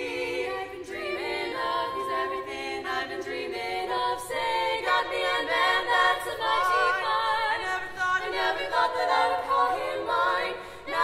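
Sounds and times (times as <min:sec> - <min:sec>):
women singing a cappella harmony: 0:00.0 - 0:11.0.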